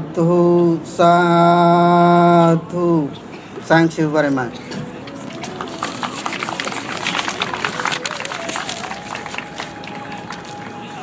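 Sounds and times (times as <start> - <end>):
voices: 0.0 - 11.0
audience clapping: 5.1 - 11.0.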